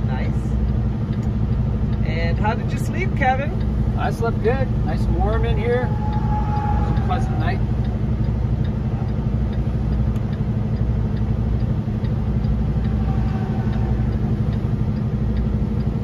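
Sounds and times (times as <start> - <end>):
diesel truck engine running: 0.0 - 16.0
light regular ticking: 0.0 - 16.0.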